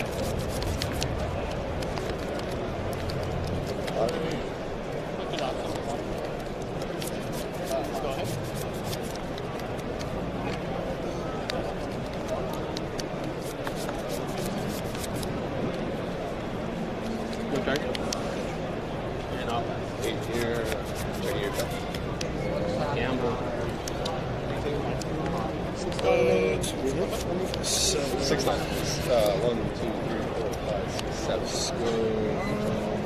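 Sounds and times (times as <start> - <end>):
cards clicking and sliding: 0.0 - 4.3, 5.3 - 10.6, 11.4 - 15.4, 20.0 - 22.3, 26.9 - 29.5
many people talking: 0.0 - 33.0
murmur of voices: 0.0 - 33.0.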